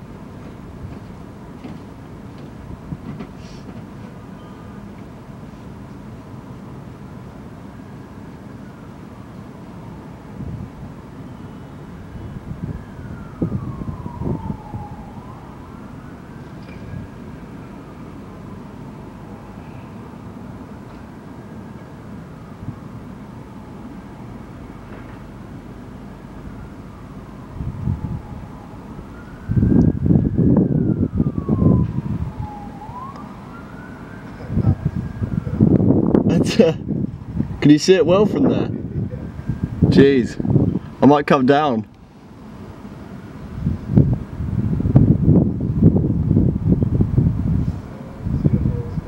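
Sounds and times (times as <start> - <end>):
distant siren wailing: 3.8 - 49.0.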